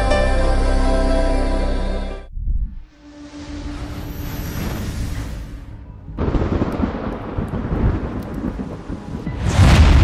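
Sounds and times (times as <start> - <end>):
loud rushing riser: 2.4 - 5.9
crackling thunder-like rumble: 6.2 - 10.0.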